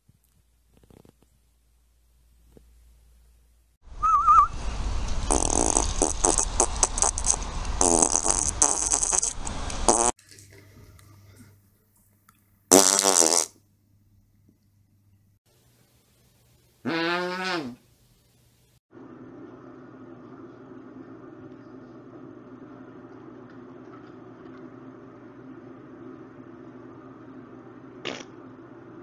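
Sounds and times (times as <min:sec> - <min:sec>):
dog farting: 0:05.3 - 0:10.2, 0:12.7 - 0:13.6, 0:28.0 - 0:28.3.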